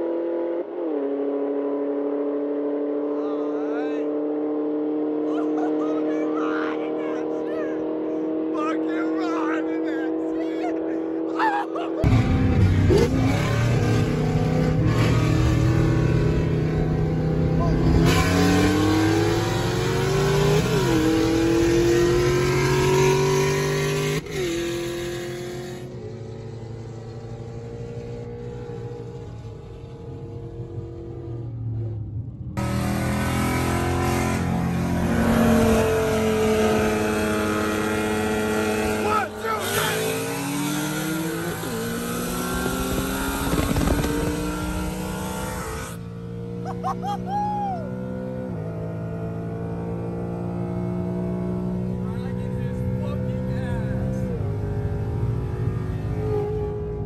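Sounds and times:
car engine at full throttle: 0.0 - 57.0.

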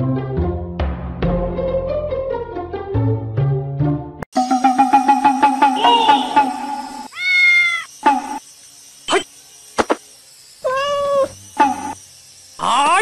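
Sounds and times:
kitten meowing: 7.1 - 7.9, 10.6 - 11.3.

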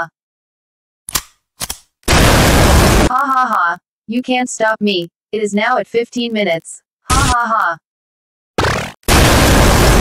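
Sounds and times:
harsh crackling blast effect: 2.1 - 3.1, 8.6 - 10.0.

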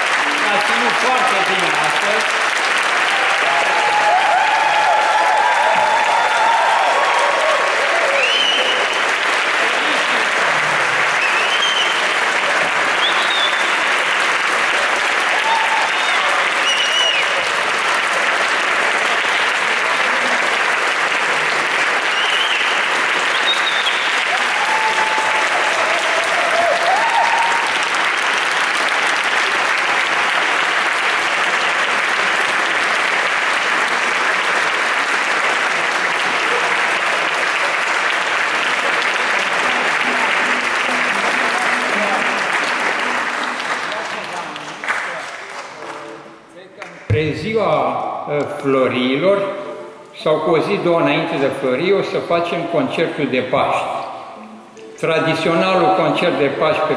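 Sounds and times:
large audience applauding: 0.0 - 49.8.

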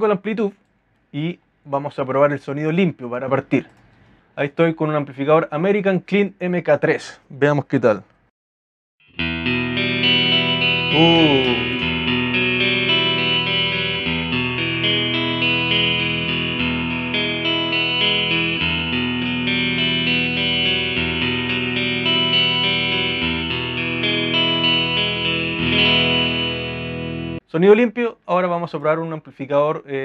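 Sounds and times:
clean electric guitar chords: 9.0 - 27.4.

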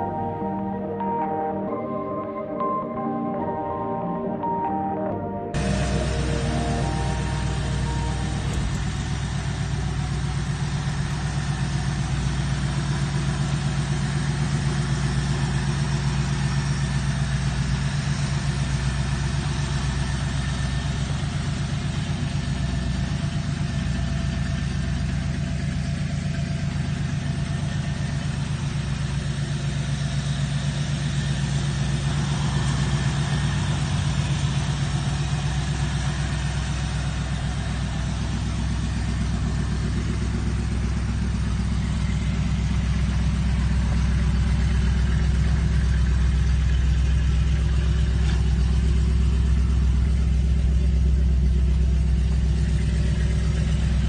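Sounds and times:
car engine idling: 5.6 - 54.0.

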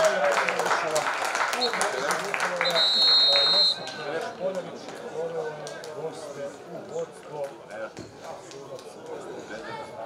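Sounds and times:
referee's whistle blast: 2.6 - 4.0.

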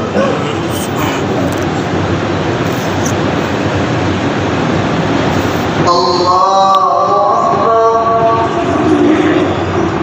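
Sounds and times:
loudspeaker hiss: 0.0 - 10.0
man reciting melodically: 5.8 - 8.7.

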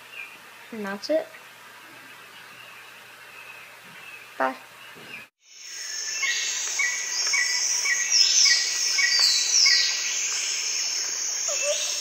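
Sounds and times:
falling bird calls: 1.7 - 12.0
lower bird calls: 1.8 - 12.0
insect trill: 5.4 - 12.0.

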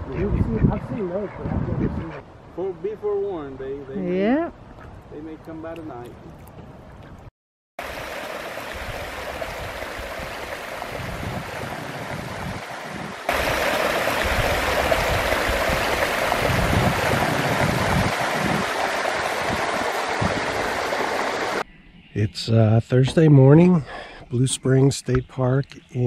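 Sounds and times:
water rushing over weir and rocks: 7.8 - 21.6.

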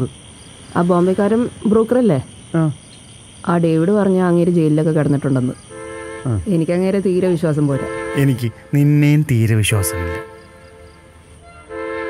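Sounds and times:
crickets chirring: 0.0 - 12.0
people talking: 0.8 - 2.8, 3.5 - 5.7, 6.3 - 10.2.

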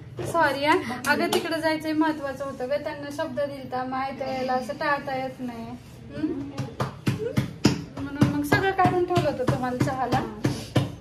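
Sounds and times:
hands slapping dough: 6.5 - 11.0.

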